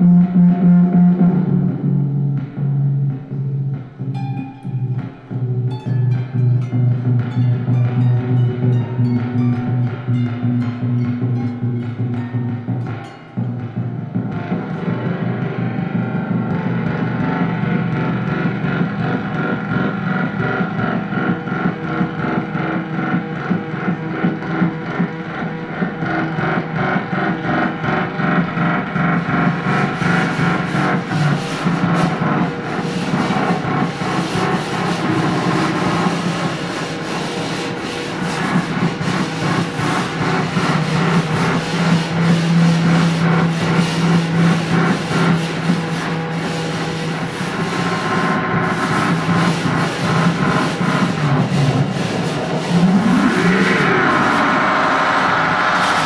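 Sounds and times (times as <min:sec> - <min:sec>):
low drone: 0:00.0 - 0:25.6, 0:27.6 - 0:56.0
rubbing and scraping sounds: 0:28.6 - 0:56.0.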